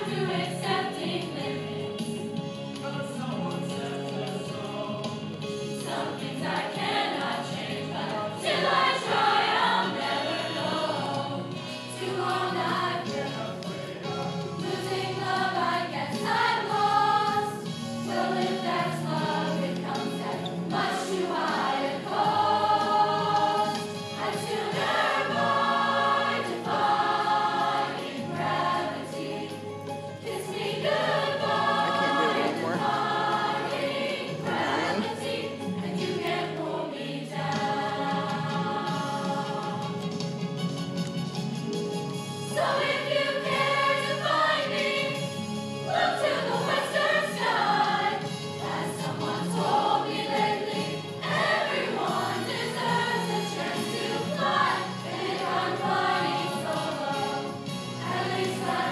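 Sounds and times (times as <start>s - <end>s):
mixed choir singing: 0.0s - 40.4s, 42.4s - 58.9s.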